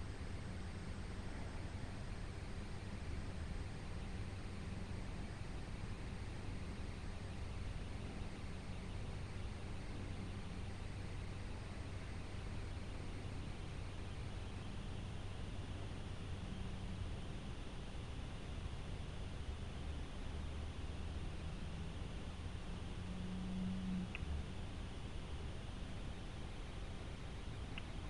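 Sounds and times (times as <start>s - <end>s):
low hum: 0.0s - 28.0s.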